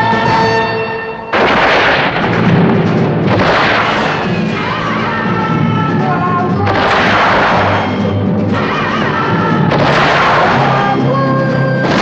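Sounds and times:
loud cannon blasts: 0:01.3 - 0:05.3, 0:06.6 - 0:11.1.

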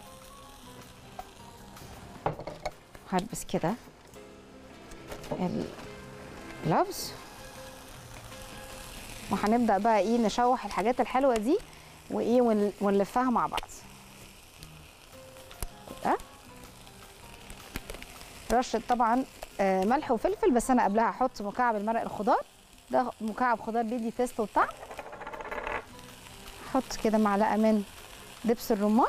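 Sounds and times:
vegetables sizzling in frying pan: 0:00.0 - 0:03.8, 0:05.0 - 0:29.0
faint background music: 0:00.0 - 0:29.0.

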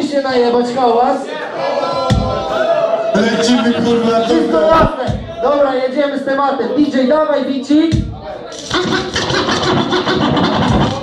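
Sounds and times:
turntable scratching: 0:03.6 - 0:04.9, 0:08.5 - 0:11.0
hip-hop beat over club speakers: 0:08.0 - 0:11.0.

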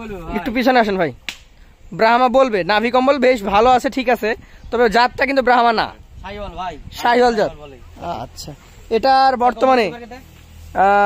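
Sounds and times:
sharp click: 0:01.2 - 0:01.6.

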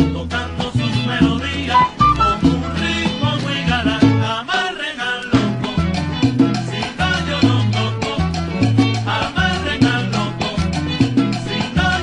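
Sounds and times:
latin percussion: 0:00.0 - 0:12.0
bass line: 0:01.8 - 0:03.0
salsa band playing: 0:01.8 - 0:03.1.

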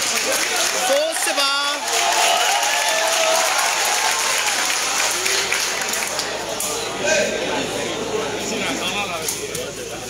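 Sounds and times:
crowd applauding: 0:00.0 - 0:09.0
voices in crowd: 0:00.0 - 0:10.0.

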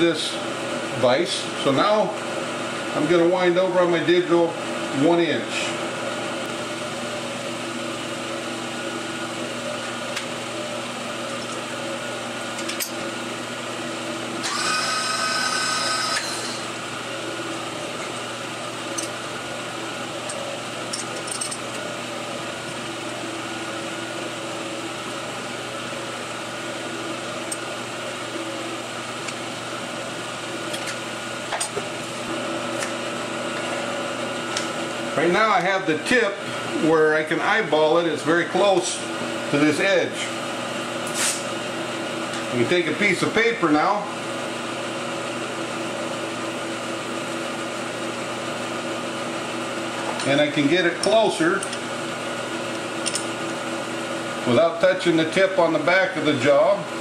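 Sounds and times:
machine hum: 0:00.0 - 0:41.0.

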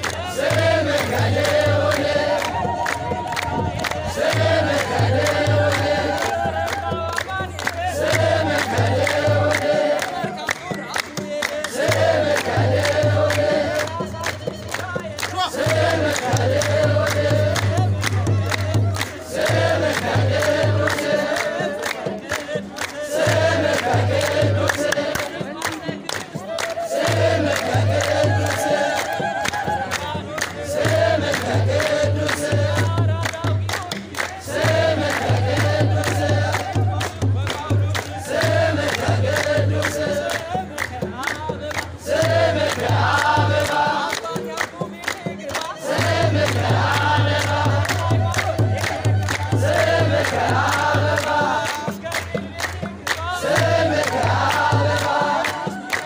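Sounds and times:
crowd singing together: 0:00.0 - 0:56.0
hand-clapping: 0:00.0 - 0:56.0
steady drumbeat: 0:00.0 - 0:56.0.

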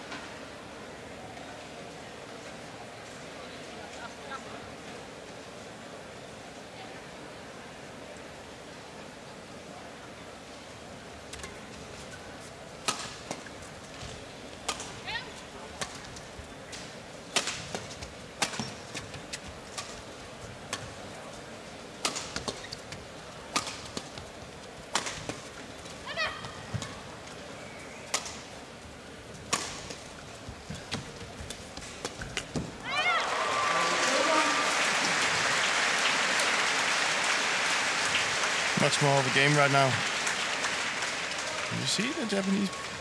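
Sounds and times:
racket hitting shuttlecock: 0:12.8 - 0:13.5, 0:17.3 - 0:19.0, 0:22.0 - 0:22.7, 0:23.5 - 0:24.2, 0:24.9 - 0:25.4, 0:29.5 - 0:30.0.

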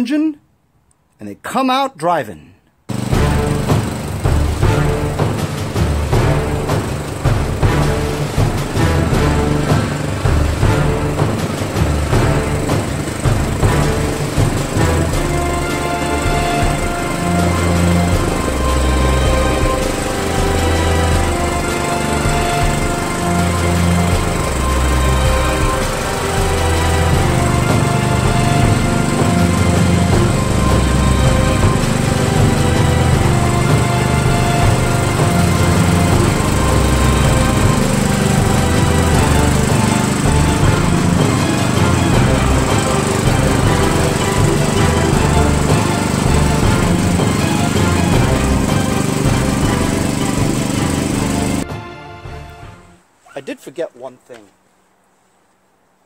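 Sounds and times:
background music: 0:00.0 - 0:00.4, 0:01.2 - 0:54.1
lawn tractor engine running: 0:02.9 - 0:51.7.

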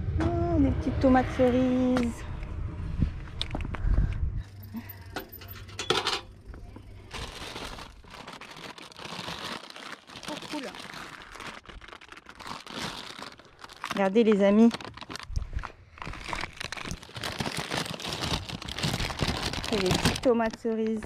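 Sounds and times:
low rumble: 0:00.0 - 0:08.5
paper bag crinkling: 0:06.9 - 0:20.7.

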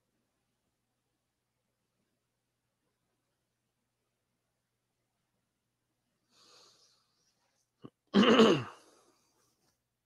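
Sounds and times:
faint breath: 0:06.2 - 0:07.8
person clearing throat: 0:08.1 - 0:09.0.

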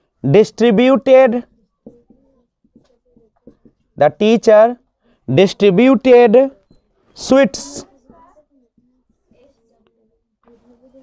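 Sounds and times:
marker squeaking on whiteboard: 0:01.4 - 0:04.0.

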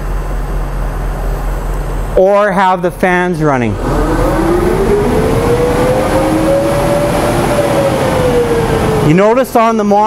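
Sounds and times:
fan rushing air with rising whine: 0:00.0 - 0:10.0.

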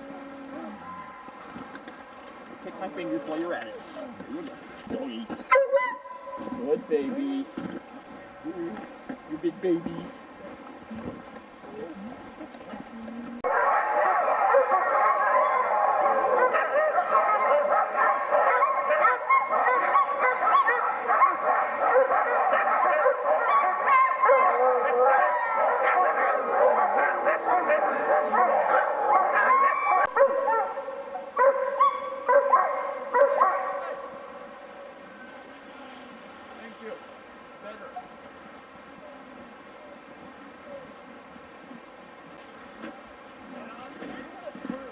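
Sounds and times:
dogs barking and howling: 0:05.5 - 0:07.2, 0:13.4 - 0:34.3.

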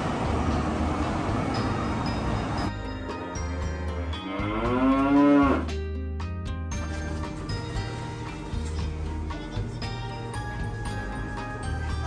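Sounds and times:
light background music: 0:00.0 - 0:12.0
cow mooing: 0:03.7 - 0:05.8.

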